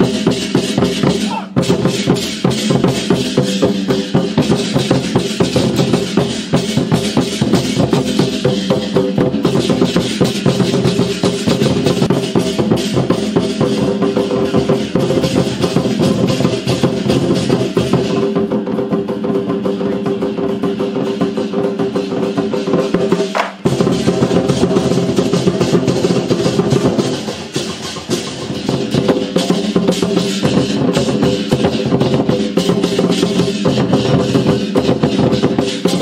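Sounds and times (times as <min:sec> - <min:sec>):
large drums beaten fast: 0:00.0 - 0:36.0.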